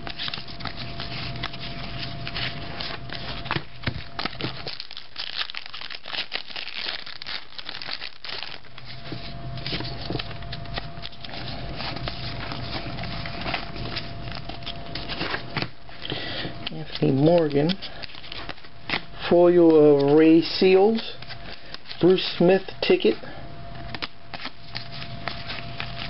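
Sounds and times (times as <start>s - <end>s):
cards handled: 0.0s - 20.4s, 21.1s - 22.2s, 23.8s - 26.0s
card pack wrappers crinkling: 0.0s - 22.4s, 23.8s - 26.0s.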